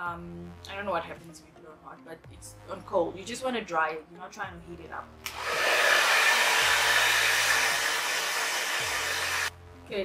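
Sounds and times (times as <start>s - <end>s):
hair dryer blowing: 5.2s - 9.5s.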